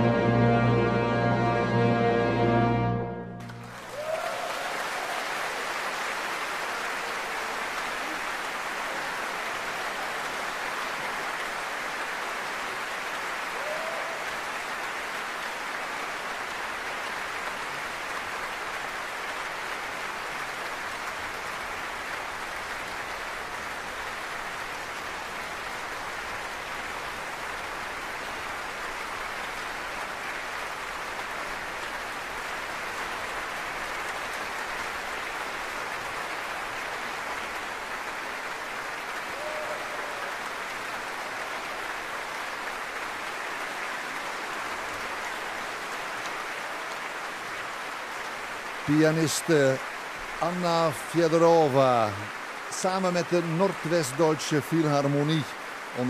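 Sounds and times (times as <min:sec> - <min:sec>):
audience applauding: 0:00.0 - 0:56.0.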